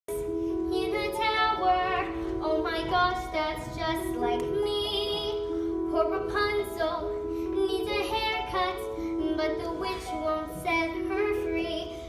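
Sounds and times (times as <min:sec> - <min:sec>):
girl singing: 0:00.1 - 0:12.0.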